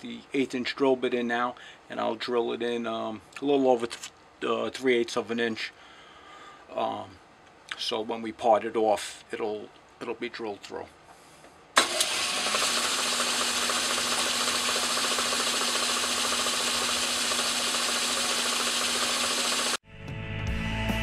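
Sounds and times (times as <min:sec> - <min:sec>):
metal lathe humming: 0:11.9 - 0:19.8
rock music: 0:19.8 - 0:21.0.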